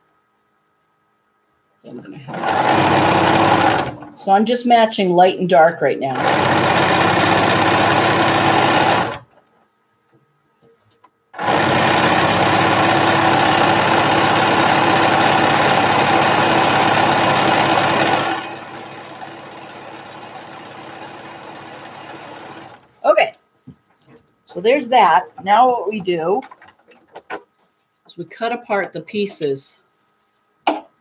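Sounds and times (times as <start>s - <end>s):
sewing machine stitching: 2.3s - 4.0s, 6.2s - 9.3s, 11.4s - 22.8s.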